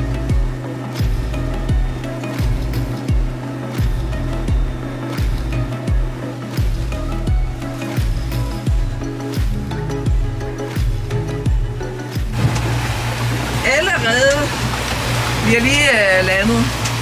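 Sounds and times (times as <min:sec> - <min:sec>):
deep kick drum: 0:00.0 - 0:12.6
sustained bass line: 0:00.0 - 0:17.0.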